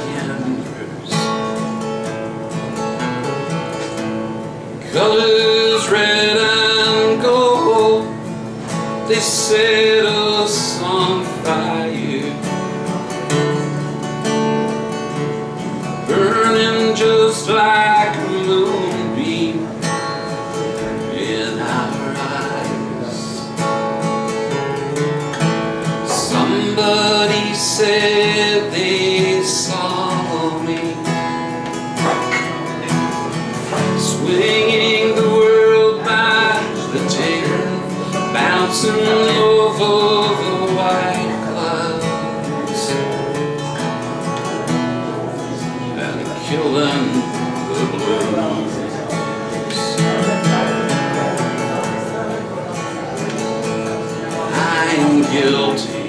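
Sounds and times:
man singing: 0.0 - 1.8, 4.8 - 14.4, 15.2 - 53.2, 53.9 - 56.0
acoustic guitar chords: 0.0 - 56.0.

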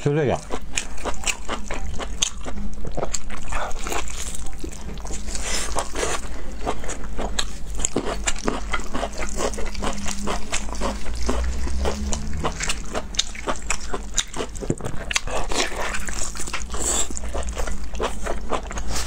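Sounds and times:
wet chewing and smacking: 0.4 - 19.0.

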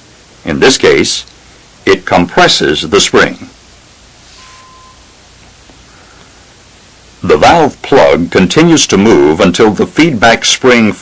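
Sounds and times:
film soundtrack hiss: 0.0 - 11.0
short faint beep: 4.3 - 5.2.

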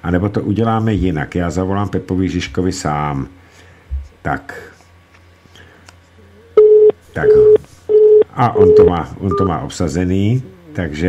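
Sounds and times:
telephone busy tone beeps: 6.6 - 9.5.

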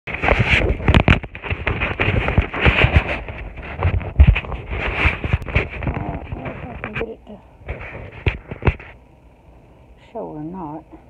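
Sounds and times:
phone rubbing against microphone: 0.1 - 9.0.

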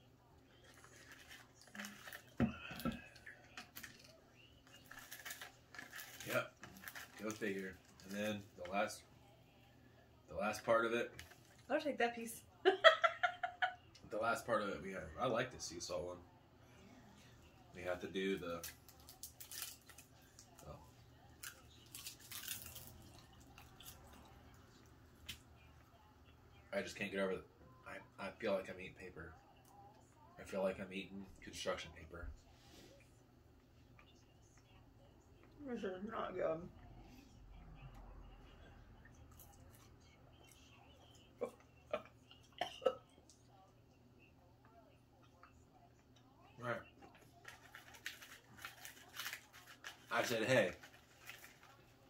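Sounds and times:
plastic snack packet crinkling: 0.6 - 2.4, 3.5 - 8.8, 18.6 - 20.7, 21.4 - 24.0, 47.1 - 52.0.

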